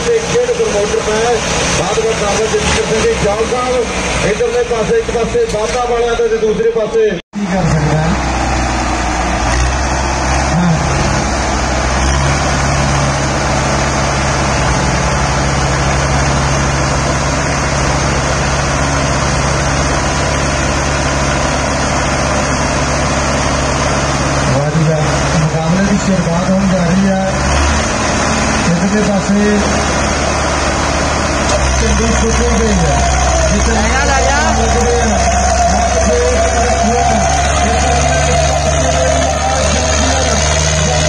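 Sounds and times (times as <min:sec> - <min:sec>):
tractor engines labouring: 0:00.0 - 0:41.0
voices shouting: 0:32.5 - 0:41.0.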